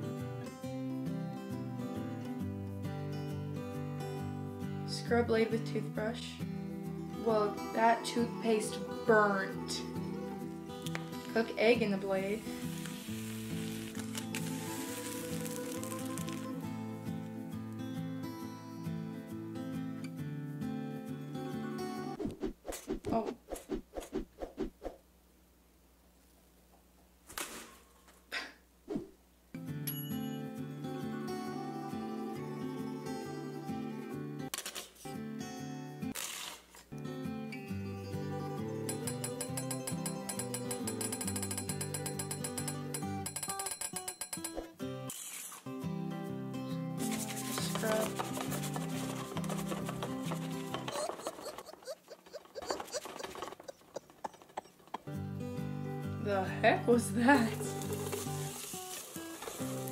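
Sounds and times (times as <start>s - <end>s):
upbeat instrumental music: 37.7s - 44.7s
sharp knocks and clicks: 39.4s - 44.7s.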